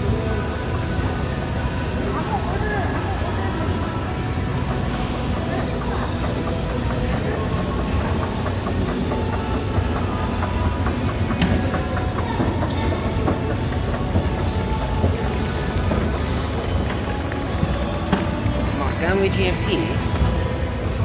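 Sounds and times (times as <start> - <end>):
escalator rumbling: 0.0 - 21.0
escalator steps clicking: 2.6 - 21.0.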